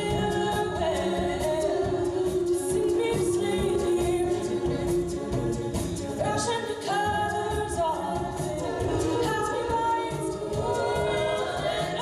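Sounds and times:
a cappella group singing: 0.0s - 12.0s
steady beat: 0.0s - 12.0s.

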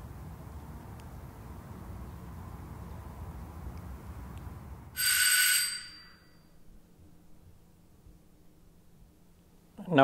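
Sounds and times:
doorbell ringing: 5.0s - 6.5s.

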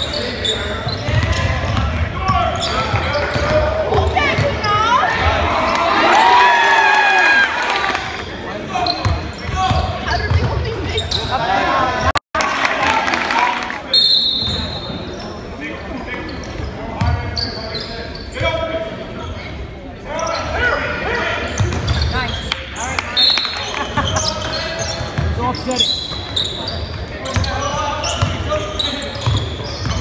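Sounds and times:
voices of players and spectators: 0.0s - 30.0s.

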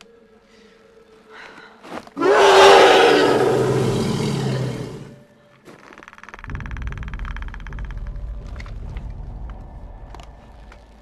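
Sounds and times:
creature roar: 2.2s - 5.2s.

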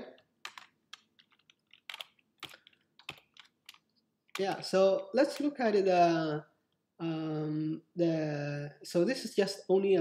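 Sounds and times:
computer keyboard key clicks: 0.4s - 4.7s.

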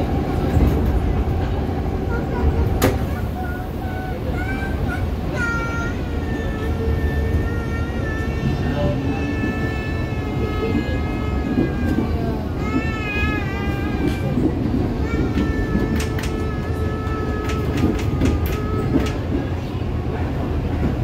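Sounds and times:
electric train rumbling: 0.0s - 21.0s.

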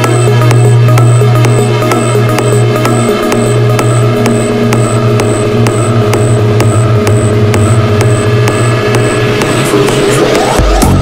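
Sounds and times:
crisp percussive tick: 0.0s - 10.8s
deep bass tone: 0.0s - 11.0s
sustained synth tones: 0.0s - 11.0s.

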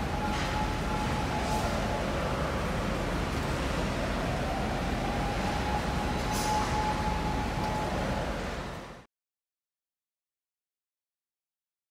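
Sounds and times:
city traffic rumble and hiss: 0.0s - 9.1s
faint steady whine: 0.0s - 9.1s.

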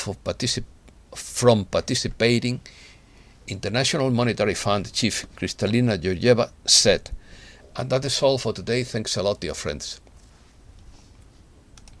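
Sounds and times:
quiet room hum: 0.0s - 12.0s
computer clicks: 11.8s - 12.0s.

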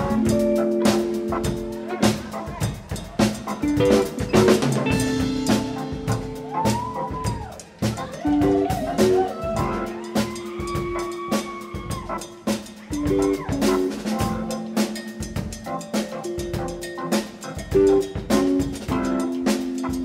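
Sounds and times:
bass notes: 0.0s - 11.1s, 11.8s - 20.0s
drum kit beat: 0.0s - 20.0s.

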